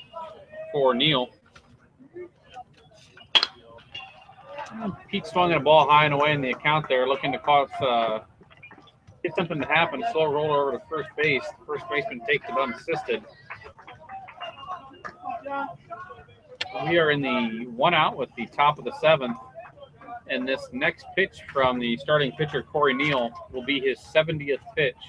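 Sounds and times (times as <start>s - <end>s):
man speaking: 0.7s - 1.3s, 4.8s - 8.2s, 9.3s - 13.2s, 16.6s - 19.4s, 20.3s - 25.0s
metal baseball bat hitting ball: 3.3s - 3.6s
indistinct voices: 4.6s - 8.2s, 9.3s - 13.2s, 16.6s - 19.4s, 20.2s - 25.0s
man murmuring: 9.3s - 13.2s, 16.7s - 19.0s.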